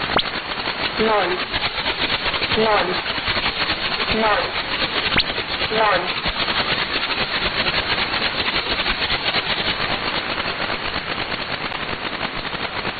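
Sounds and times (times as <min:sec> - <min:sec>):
radio static with pulsing crackle: 0:00.0 - 0:12.9.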